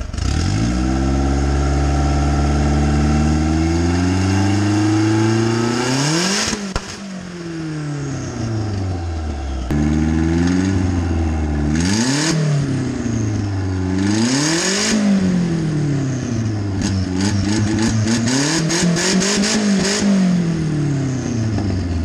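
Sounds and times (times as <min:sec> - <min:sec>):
turbocharged car engine revving: 0:00.0 - 0:22.0.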